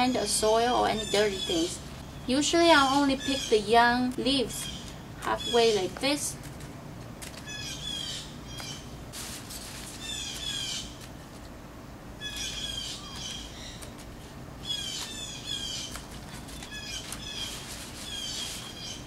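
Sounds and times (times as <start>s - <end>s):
songbirds chirping: 0.0s - 6.4s, 7.3s - 9.1s, 9.8s - 11.2s, 12.1s - 19.0s.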